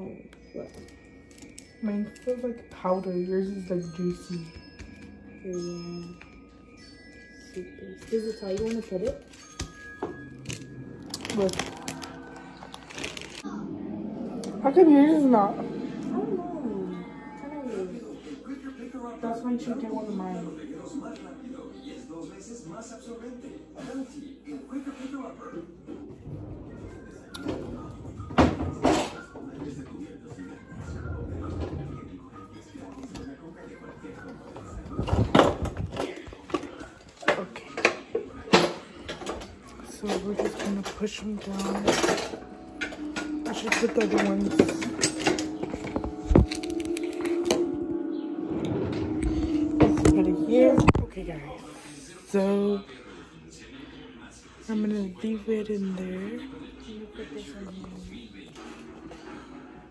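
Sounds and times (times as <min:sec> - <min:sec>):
plastic packaging crinkling: 0:10.4 - 0:13.4, 0:45.7 - 0:47.4
dry noodles cracking: 0:10.5 - 0:13.4, 0:46.4 - 0:47.6.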